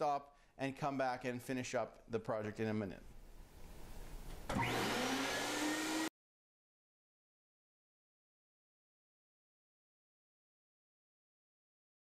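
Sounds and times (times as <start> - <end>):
vacuum pump whine and hiss: 4.5 - 6.1.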